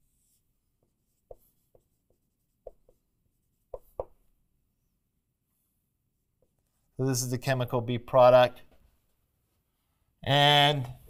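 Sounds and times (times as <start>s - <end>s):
marker strokes on whiteboard: 0.0s - 6.9s.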